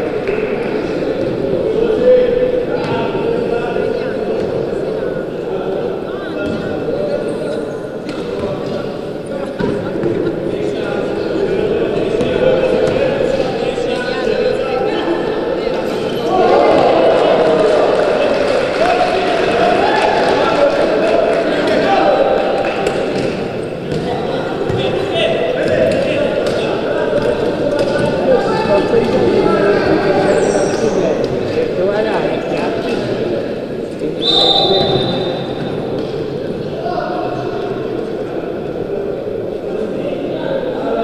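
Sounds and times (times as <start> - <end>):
shouting and chatter: 8.9 - 41.0.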